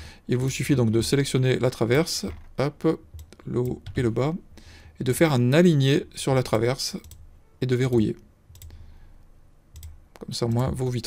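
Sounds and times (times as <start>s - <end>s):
computer mouse clicking: 7.0s - 7.3s, 7.9s - 8.8s, 9.7s - 10.7s.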